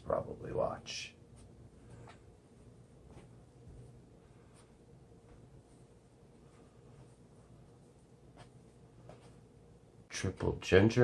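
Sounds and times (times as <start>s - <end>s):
soft scrapes: 1.3s - 9.5s.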